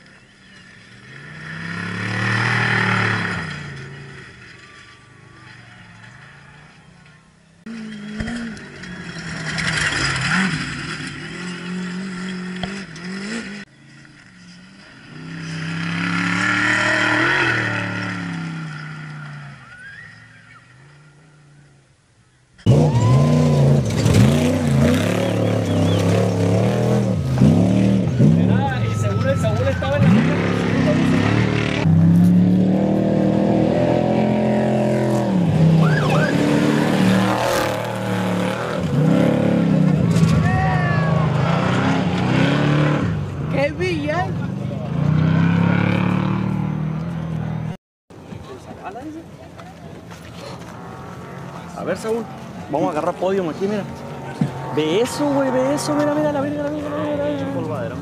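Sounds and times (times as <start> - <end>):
race vehicle engine revving: 0.0 - 6.7, 7.6 - 21.2, 22.6 - 47.8, 50.1 - 58.0.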